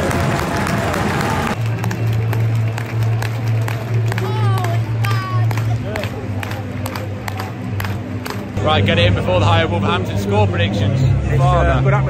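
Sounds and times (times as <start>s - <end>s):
people clapping: 0.0s - 8.6s
music playing: 0.0s - 12.0s
stadium crowd noise: 0.0s - 12.0s.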